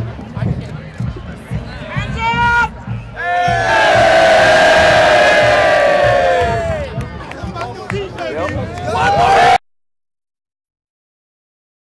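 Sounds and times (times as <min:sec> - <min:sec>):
team yelling together: 0:03.2 - 0:06.8.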